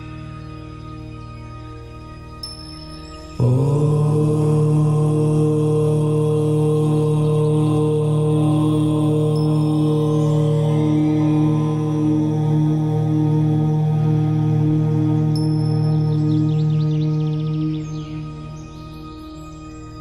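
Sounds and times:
ambient music drone: 0:00.0 - 0:20.0
low voice chanting: 0:03.4 - 0:18.9.

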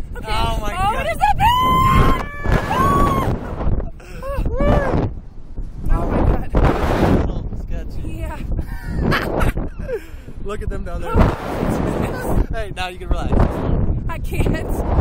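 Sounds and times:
wind on microphone: 0:00.0 - 0:15.0
people screaming: 0:01.2 - 0:03.5
people laughing: 0:11.7 - 0:12.5.

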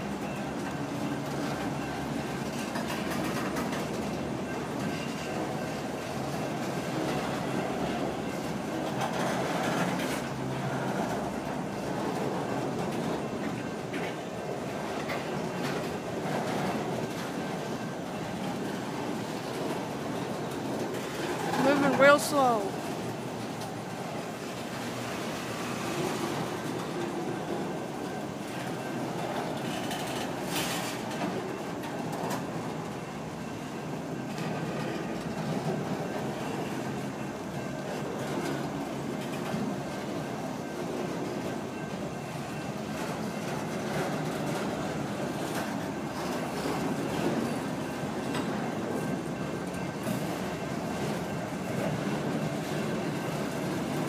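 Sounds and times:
train wheels rolling on rails: 0:00.0 - 0:54.0.

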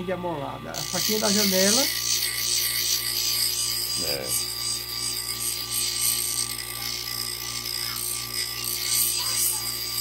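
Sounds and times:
bench grinder motor hum: 0:00.6 - 0:10.0
grinding wheel scraping steel: 0:00.8 - 0:10.0.

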